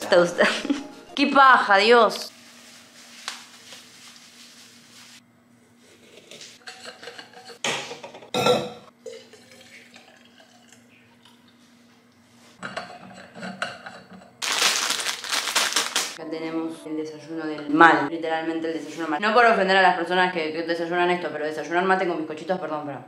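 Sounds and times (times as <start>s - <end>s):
kitchenware knocking and clinking: 6.6s - 8.9s, 12.6s - 14.3s
dry leaves pouring into a gourd: 14.4s - 16.2s
plastic packet crinkling: 14.4s - 16.2s.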